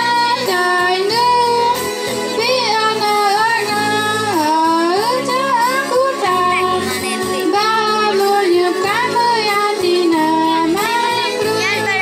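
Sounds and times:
girls singing into microphone: 0.0 - 12.0.

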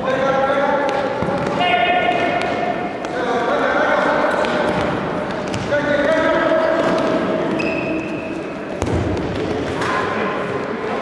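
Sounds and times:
ball being struck: 8.8 - 10.0.

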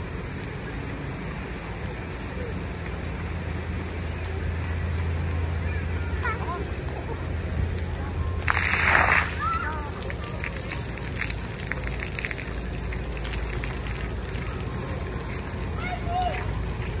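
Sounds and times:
water jets spraying: 0.0 - 17.0
loud burst of spray: 8.4 - 9.8.

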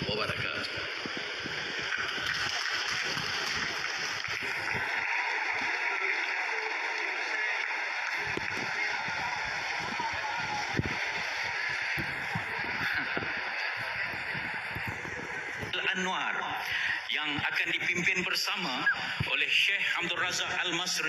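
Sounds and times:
crowd noise of seated audience: 0.0 - 21.0.

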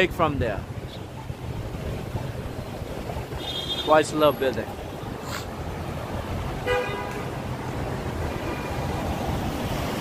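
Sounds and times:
city traffic rumble: 0.0 - 10.0
car horn toot: 3.4 - 3.9, 6.6 - 7.3.

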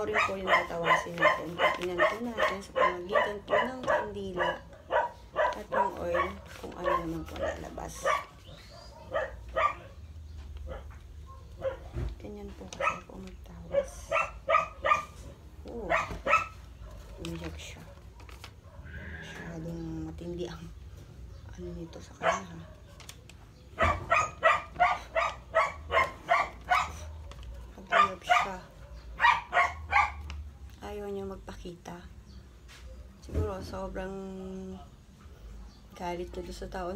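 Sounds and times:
dog barking: 0.0 - 12.0, 12.7 - 19.0, 21.8 - 30.6.

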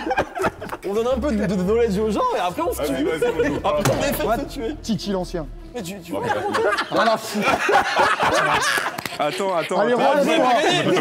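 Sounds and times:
men laughing: 0.0 - 4.8, 6.0 - 11.0
men speaking: 0.0 - 11.0.

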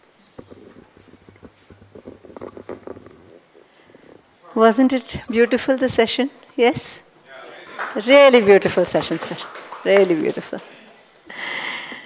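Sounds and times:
microphone handling knocks: 0.0 - 4.3, 5.1 - 7.0.

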